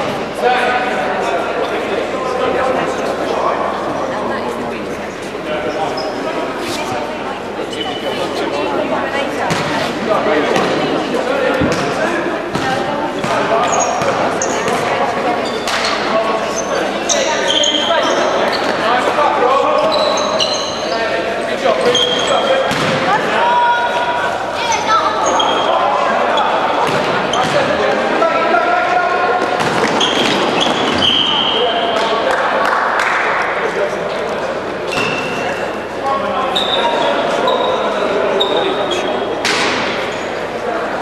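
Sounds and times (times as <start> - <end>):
shoes squeaking on floor: 5.7 - 8.4, 12.6 - 19.0, 19.7 - 22.6, 24.6 - 26.6, 29.7 - 31.7, 34.9 - 35.8, 36.5 - 39.3, 40.0 - 40.5.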